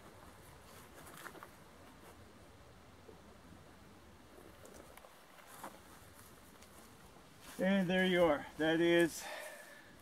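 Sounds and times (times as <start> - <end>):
footsteps in grass: 4.8 - 9.1.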